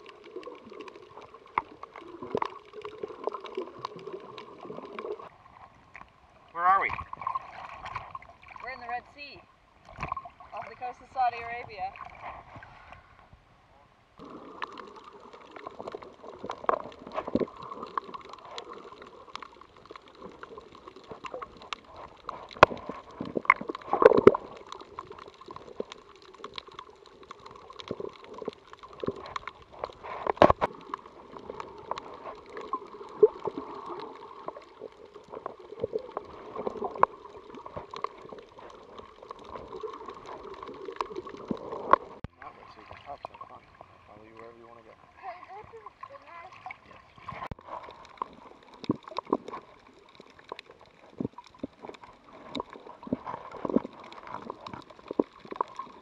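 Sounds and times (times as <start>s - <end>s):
clicks and pops: 14.2s - 42.4s, 47.2s - 56.0s.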